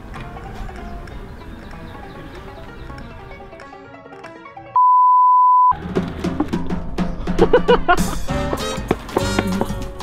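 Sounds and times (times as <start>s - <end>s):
background music: 0.0s - 4.8s, 5.7s - 10.0s
censor bleep: 4.8s - 5.8s.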